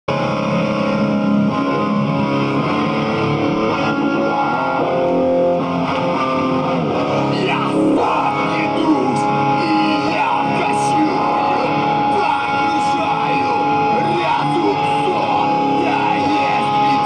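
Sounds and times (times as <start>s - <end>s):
distorted electric guitar: 0.1s - 17.0s.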